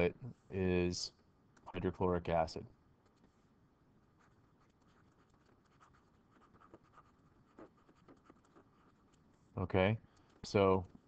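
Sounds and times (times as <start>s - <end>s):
stylus scratching on screen: 4.0s - 9.6s.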